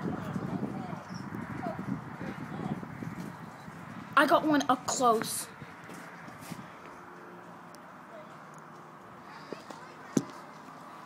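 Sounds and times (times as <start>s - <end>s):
indistinct chatter of voices: 5.1s - 11.0s.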